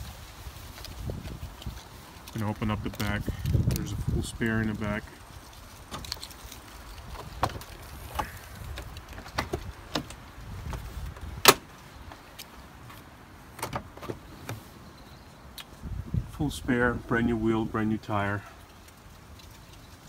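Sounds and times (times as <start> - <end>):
latch clicks and knocks: 7.4 - 10.2, 11.4 - 11.7, 13.6 - 14.2
loud sharp door clunk: 11.4 - 11.6.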